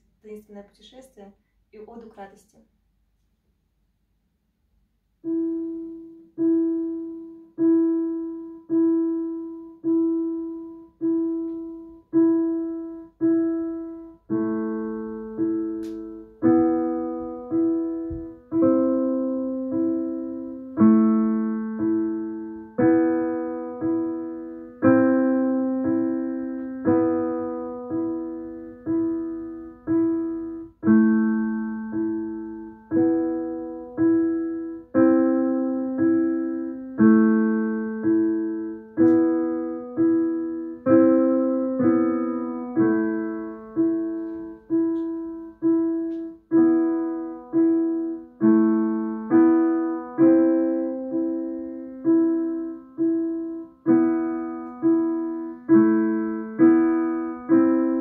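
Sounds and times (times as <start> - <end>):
digital piano playing slowly: 5.2 - 58.0.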